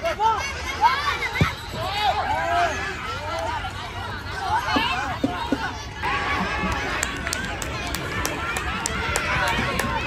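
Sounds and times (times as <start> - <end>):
children shouting: 0.0 - 10.0.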